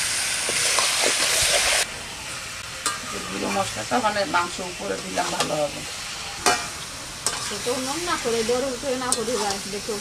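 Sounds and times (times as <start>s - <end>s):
meat frying in hot oil: 0.0s - 10.0s
metal spatula scraping a wok: 2.9s - 10.0s.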